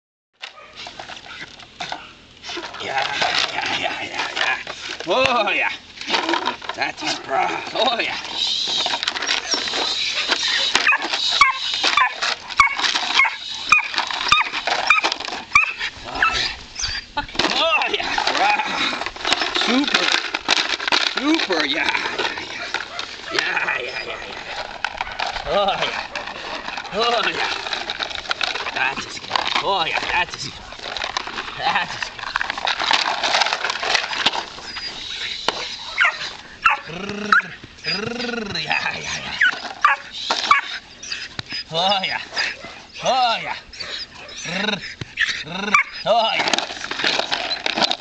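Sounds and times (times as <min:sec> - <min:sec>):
puppy yipping and whining: 0:08.6 - 0:17.2, 0:34.6 - 0:38.0, 0:39.4 - 0:41.7, 0:43.6 - 0:46.1.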